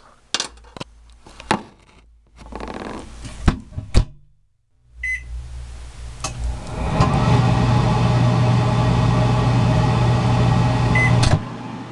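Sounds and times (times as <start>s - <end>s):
microwave beep: 5.0s - 5.3s, 10.9s - 11.4s
microwave oven humming: 5.0s - 11.9s.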